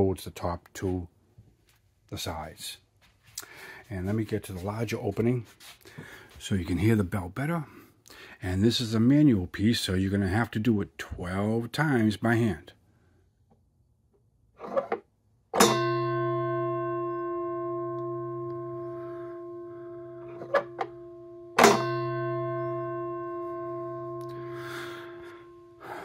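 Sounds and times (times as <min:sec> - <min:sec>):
bell struck by hammer: 0:15.6 - 0:18.8, 0:21.6 - 0:24.5.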